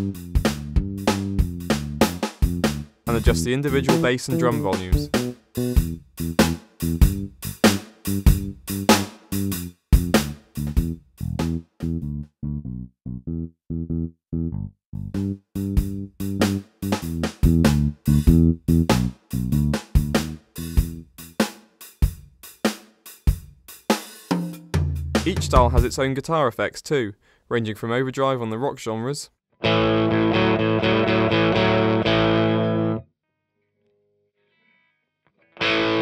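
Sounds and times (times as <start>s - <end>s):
backing drums: 0.0s - 11.6s, 15.6s - 26.1s
bass line: 0.0s - 21.1s, 29.6s - 33.0s.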